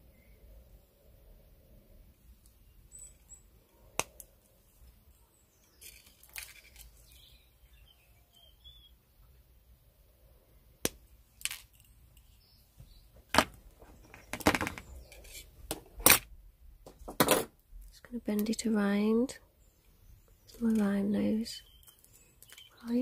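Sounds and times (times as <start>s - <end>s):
wire rustling: 2.3s - 7.6s, 10.9s - 16.3s, 20.4s - 23.0s.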